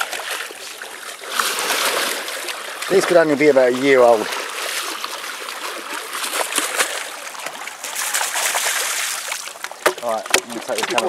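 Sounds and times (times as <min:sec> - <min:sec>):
shallow water splashing: 0:00.0 - 0:11.0.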